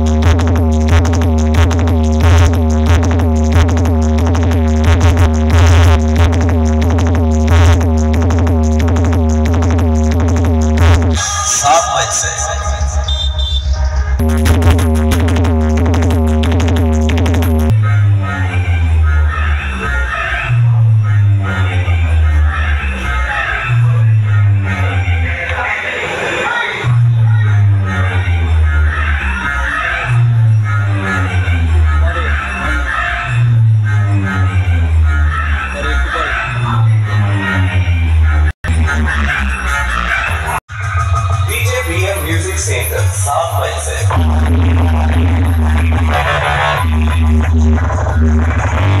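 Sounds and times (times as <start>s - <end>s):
electronic dance music: 0.0s - 49.0s
heavy bass notes: 0.0s - 49.0s.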